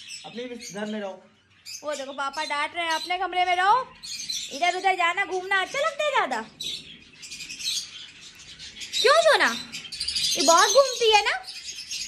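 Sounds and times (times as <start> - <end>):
parrot chirping and chattering: 0.0 - 12.0.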